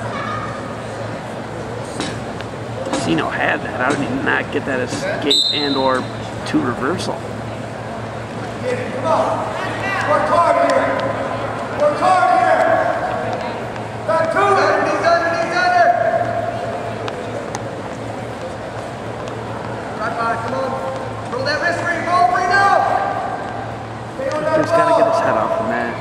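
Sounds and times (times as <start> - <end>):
steady low hum: 0.0 - 26.0
people calling out: 24.2 - 25.9.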